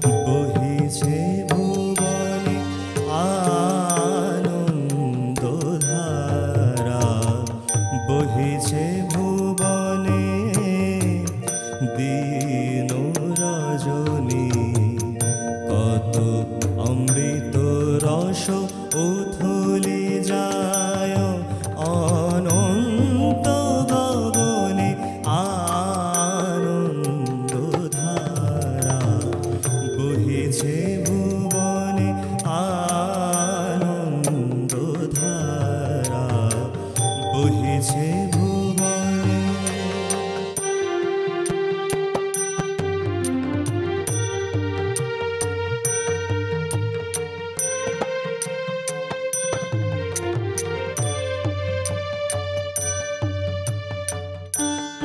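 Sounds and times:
man singing devotional song: 0.0s - 42.1s
light percussion strikes: 0.0s - 55.0s
harmonium drone and chords: 35.9s - 55.0s.

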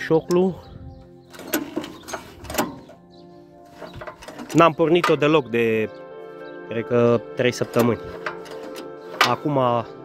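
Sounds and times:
choke lever clicking: 1.3s - 3.0s, 7.6s - 9.4s.

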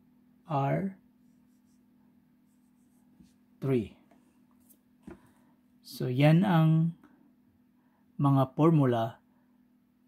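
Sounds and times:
marker scratching on whiteboard: 1.2s - 1.9s, 2.5s - 3.4s.

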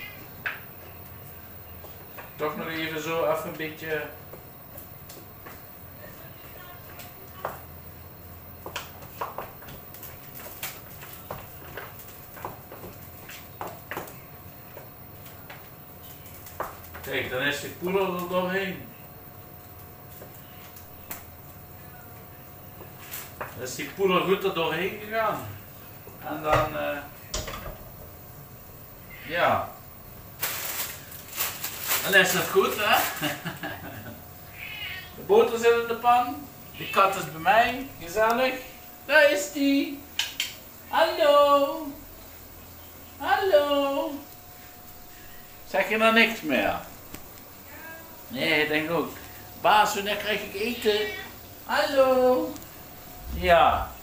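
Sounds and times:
butter sizzling in a frying pan: 41.6s - 53.2s.

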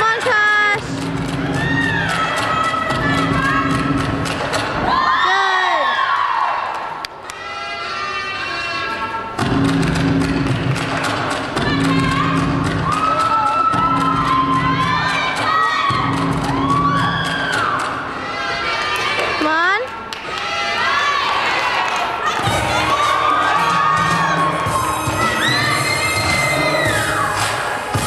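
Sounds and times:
people cheering and shouting: 0.3s - 9.4s, 11.0s - 28.0s
music with steady beat: 0.8s - 4.8s, 9.4s - 18.1s, 22.4s - 28.0s.

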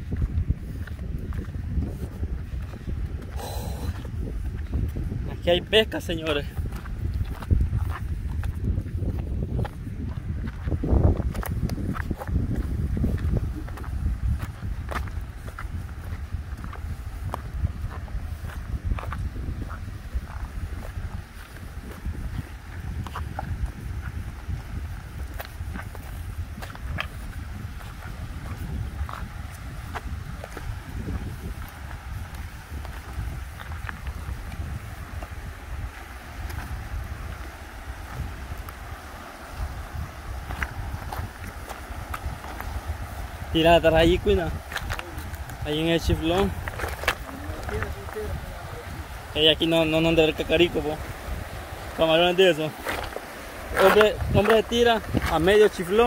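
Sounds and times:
footsteps on river cobbles: 0.0s - 56.0s
wind rumbling on microphone: 0.0s - 56.0s
river rapids rushing: 34.1s - 56.0s.

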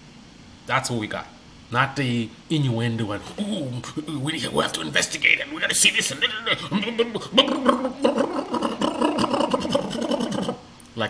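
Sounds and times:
man vocalising rapidly: 3.1s - 10.7s.

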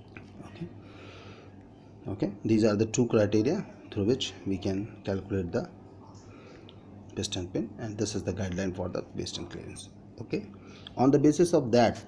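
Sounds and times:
low electrical hum: 0.0s - 12.0s
soft breath: 0.4s - 2.0s.

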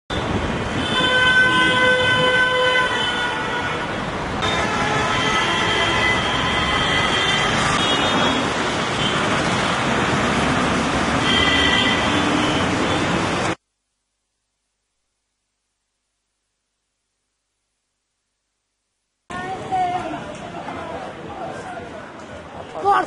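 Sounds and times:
vehicle horns honking: 0.1s - 9.4s, 11.2s - 13.4s
street traffic noise: 0.1s - 13.6s, 19.3s - 23.0s.

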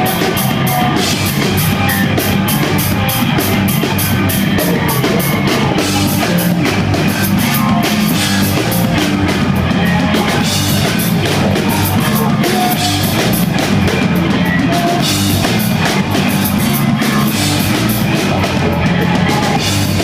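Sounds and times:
bass line: 0.0s - 20.0s
drum kit with cymbal hits: 0.0s - 20.0s
electric guitar: 0.0s - 20.0s.

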